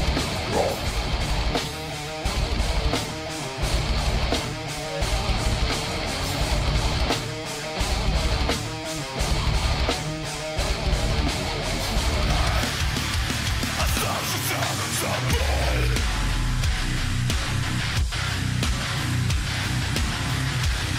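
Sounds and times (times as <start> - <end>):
distorted electric guitar chugs: 0.0 - 20.9.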